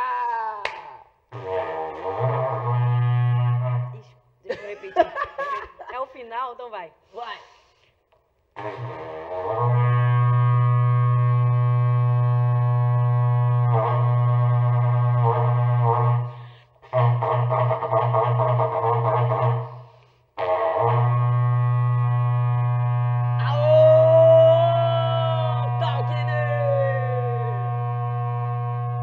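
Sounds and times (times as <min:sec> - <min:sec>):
horn trumpet blasts: 0:08.6 - 0:29.0.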